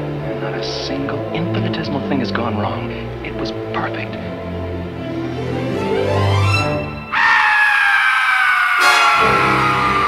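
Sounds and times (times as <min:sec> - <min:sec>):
shrill high tone falling: 0:07.1 - 0:10.0.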